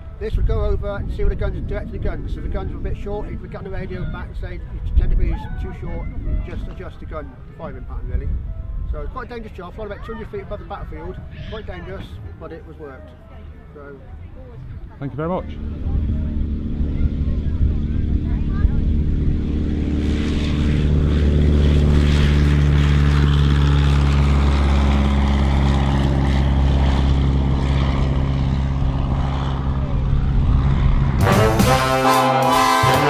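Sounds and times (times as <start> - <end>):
light aircraft engine and propeller: 0.0 - 33.0
brass band music: 31.2 - 33.0.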